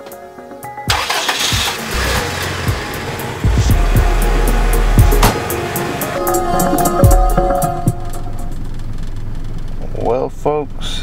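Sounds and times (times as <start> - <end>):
background music: 0.0 - 8.6
vehicle engine running: 1.0 - 11.0.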